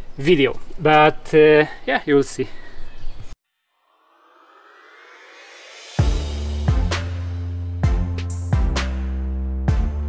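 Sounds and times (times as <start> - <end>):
rising whoosh: 3.6 - 7.9.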